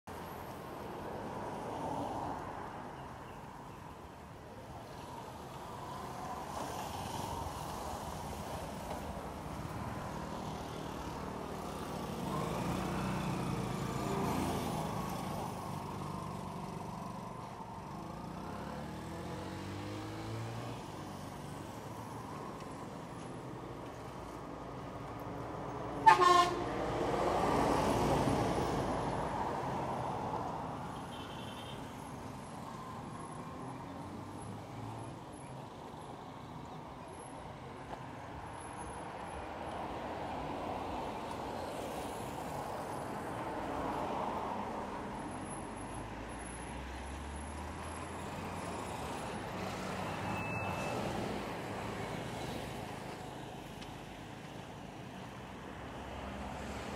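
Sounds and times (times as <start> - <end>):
vehicles passing: 0.0 - 56.9
vehicle horn toot: 26.0 - 26.6.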